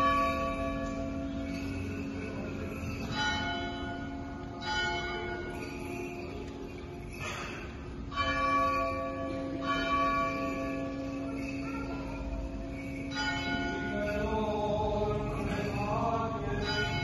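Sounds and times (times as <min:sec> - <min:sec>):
church bell tolling: 0:00.0 - 0:17.0.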